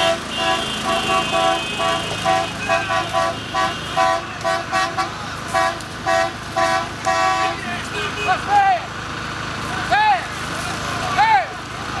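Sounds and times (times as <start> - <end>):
vehicle horn blasts: 0.0 - 8.6
people shouting calls: 0.0 - 8.9, 9.8 - 10.4, 11.0 - 12.0
passing trucks rumbling: 0.0 - 12.0.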